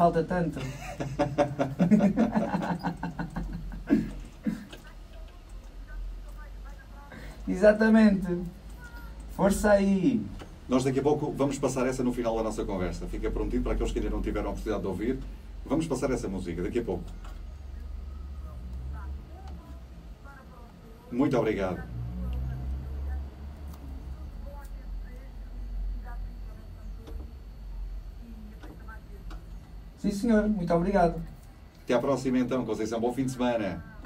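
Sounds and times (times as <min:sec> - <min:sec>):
people talking: 0:00.0 - 0:34.0
steady low hum: 0:00.0 - 0:34.0
laughter: 0:00.6 - 0:04.7.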